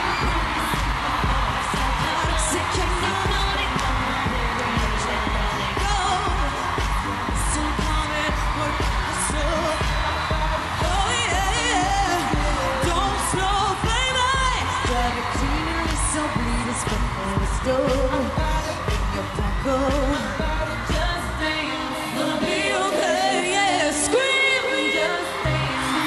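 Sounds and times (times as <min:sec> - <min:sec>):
electro-pop dance track: 0:00.0 - 0:26.0
woman singing into microphone: 0:00.0 - 0:26.0.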